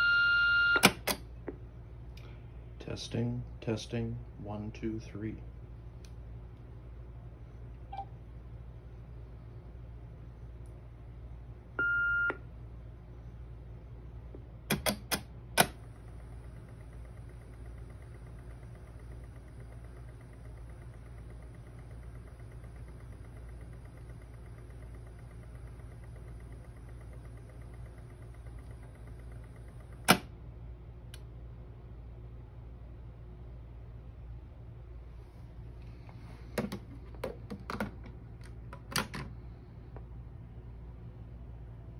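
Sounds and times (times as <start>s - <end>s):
answering machine beep: 0.0s - 1.2s, 11.8s - 12.4s
high whine of tape transport: 0.0s - 1.2s, 14.7s - 30.3s
tape mechanism clicks: 0.8s - 1.3s, 14.7s - 30.3s
low hum: 15.7s - 30.3s
loud clunk of machine stopping: 29.9s - 30.3s.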